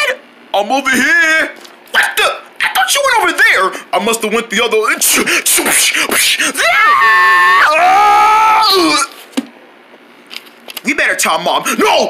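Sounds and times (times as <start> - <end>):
person's high-pitched cartoon wail: 6.4 - 9.1.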